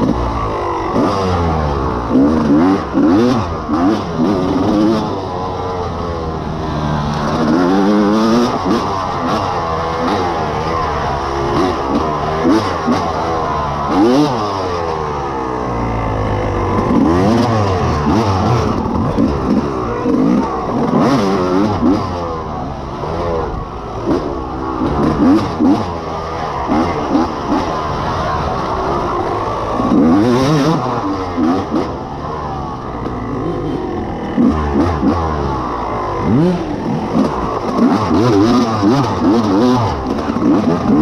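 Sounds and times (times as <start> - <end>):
dirt bike engine revving: 0.0 - 41.0.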